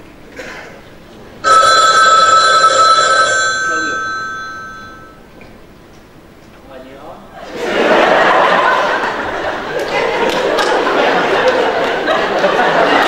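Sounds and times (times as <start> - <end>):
telephone ringing: 1.4 - 5.2.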